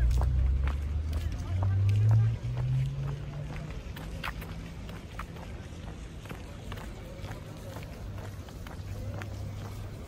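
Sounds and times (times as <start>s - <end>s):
footsteps on brick paving: 0.0s - 10.0s.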